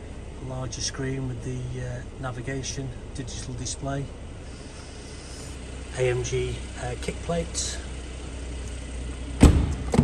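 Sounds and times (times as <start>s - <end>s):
steady low hum: 0.0s - 10.0s
car door shutting: 9.4s - 10.0s.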